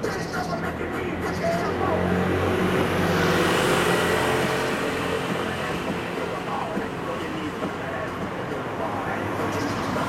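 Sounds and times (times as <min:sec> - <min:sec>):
road vehicle passing by: 0:00.0 - 0:10.0.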